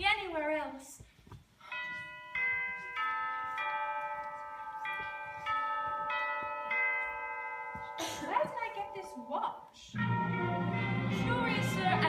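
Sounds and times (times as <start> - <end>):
bell-like chime melody: 1.6 - 12.0.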